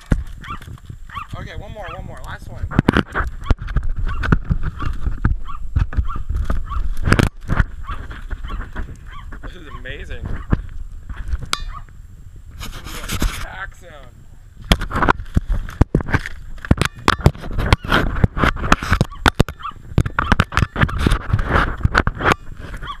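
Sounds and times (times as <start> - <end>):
knocks and thumps on camera: 0.0 - 1.4, 2.6 - 11.9, 14.6 - 23.0.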